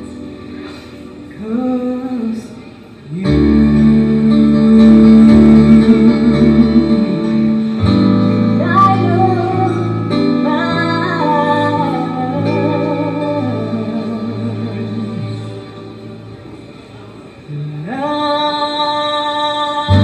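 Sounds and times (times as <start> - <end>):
woman singing a slow ballad: 1.3 - 15.6, 17.5 - 20.0.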